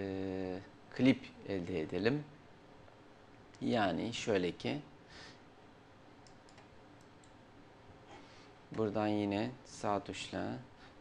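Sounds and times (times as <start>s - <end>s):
computer mouse clicks: 6.2s - 7.4s.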